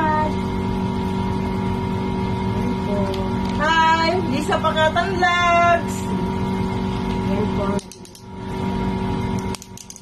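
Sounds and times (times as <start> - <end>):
steady hum: 0.0 - 10.0.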